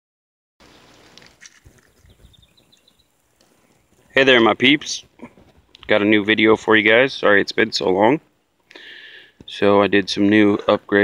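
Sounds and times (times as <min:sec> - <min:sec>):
high chirps: 0:01.8 - 0:03.2.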